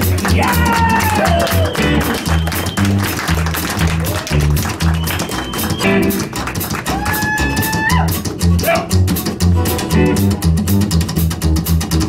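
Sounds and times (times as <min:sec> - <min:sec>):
electric guitar lead: 0:00.0 - 0:11.0
acoustic guitar rhythm: 0:00.0 - 0:12.0
upright bass pulse: 0:00.0 - 0:12.0.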